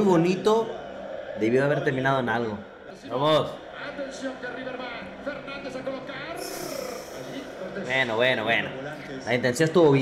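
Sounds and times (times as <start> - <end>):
tv commentary speech: 0.0 - 10.0.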